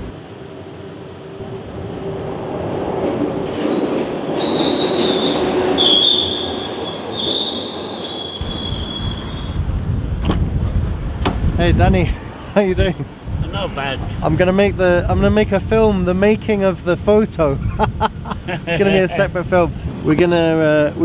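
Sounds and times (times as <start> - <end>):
train rumble: 0.0 - 17.1
train wheels squealing on rails: 1.4 - 9.7.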